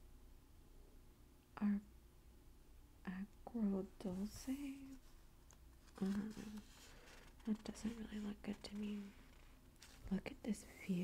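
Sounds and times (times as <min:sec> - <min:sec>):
woman saying a soft syllable: 0:06.0 - 0:06.7.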